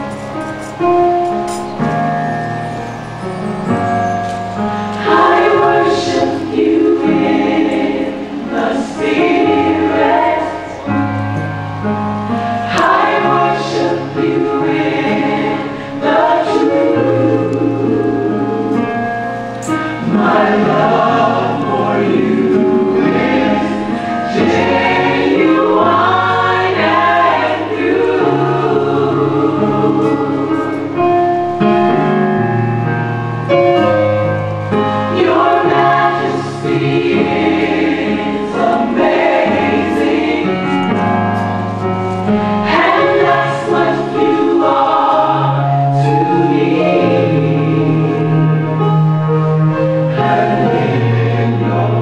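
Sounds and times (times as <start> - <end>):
choir singing gospel song: 3.6 - 32.5, 33.5 - 52.0.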